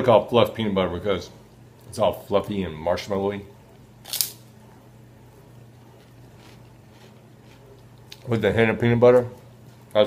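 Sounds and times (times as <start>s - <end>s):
faint low hum: 0.0s - 10.0s
crunch of a bite: 6.0s - 8.3s.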